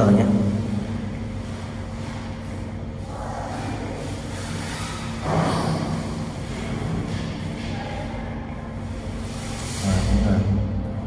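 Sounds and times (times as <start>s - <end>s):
low background hum and rumble: 0.0s - 11.0s.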